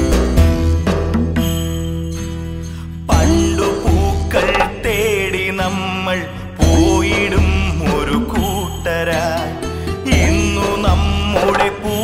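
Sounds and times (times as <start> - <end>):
backing track with bass line: 3.2 - 5.4, 10.1 - 12.0.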